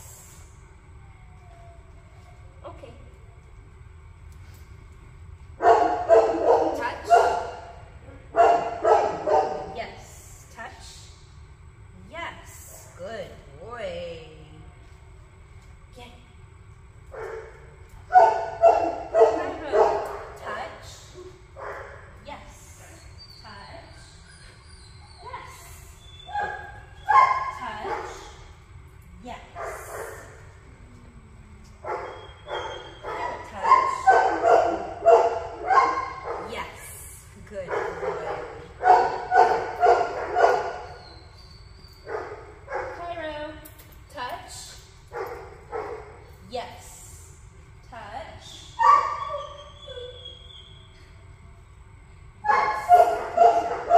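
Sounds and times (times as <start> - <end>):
dog barking: 5.6 - 7.6, 8.3 - 9.7, 18.1 - 20.2, 31.8 - 36.5, 37.7 - 41.0, 52.5 - 53.9.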